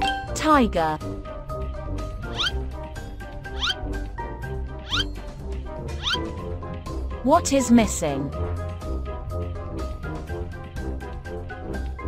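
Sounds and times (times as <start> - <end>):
children's background music: 0.0 - 12.0.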